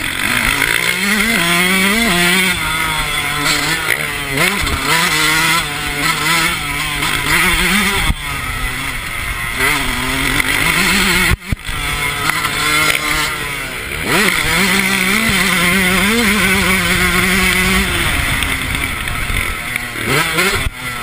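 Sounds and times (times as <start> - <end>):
motocross engine revving: 0.0 - 21.0.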